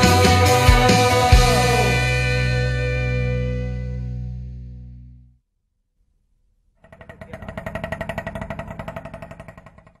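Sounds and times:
small engine running: 6.8 - 10.0.

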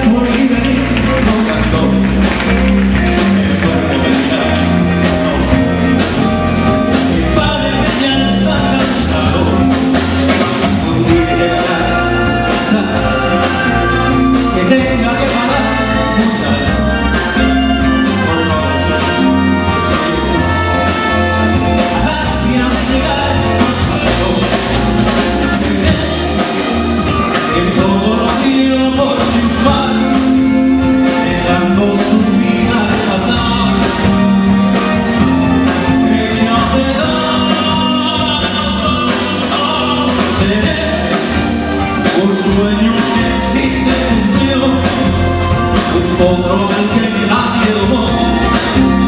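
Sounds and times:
drum kit beat: 0.0 - 49.0
live band playing: 0.0 - 49.0
trombone notes: 3.4 - 49.0.

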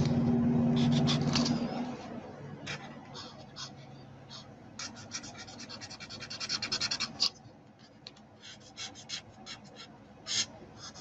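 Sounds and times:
marker tip scratching on cardstock: 2.7 - 11.0.

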